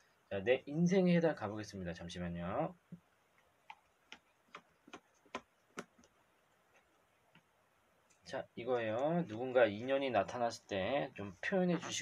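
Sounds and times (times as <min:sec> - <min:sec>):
hands tapping hardcover book: 0:03.6 - 0:06.2.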